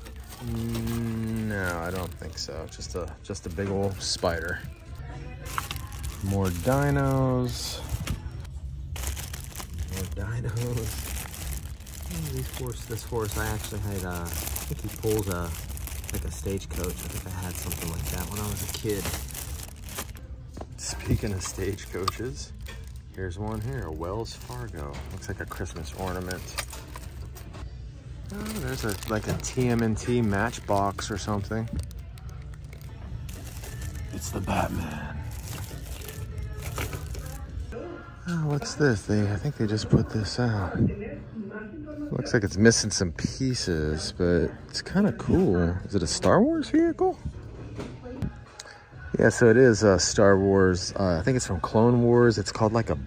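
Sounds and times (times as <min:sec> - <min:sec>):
plastic bags crinkling: 0:00.0 - 0:20.2, 0:20.8 - 0:27.5, 0:28.2 - 0:37.5
low background hum: 0:00.0 - 0:45.0.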